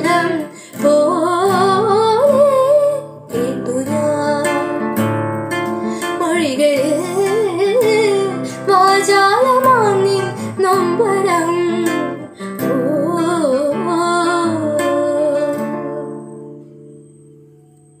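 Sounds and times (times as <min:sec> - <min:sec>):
woman singing: 0:00.0 - 0:16.6
strummed guitar chords: 0:00.0 - 0:18.0.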